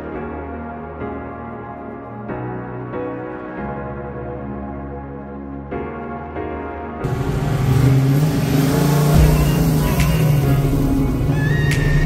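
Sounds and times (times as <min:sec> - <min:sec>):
car engine running: 0:07.0 - 0:12.0.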